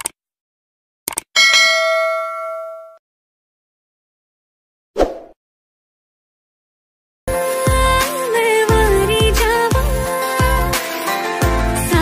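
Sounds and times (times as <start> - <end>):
short clicks: 1.1 - 1.3
bell-like notification ding: 1.4 - 3.0.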